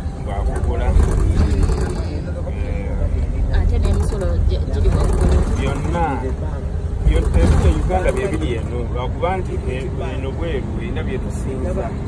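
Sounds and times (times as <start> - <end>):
vehicle rumble from inside cabin: 0.0 - 12.0
voices talking: 0.0 - 12.0.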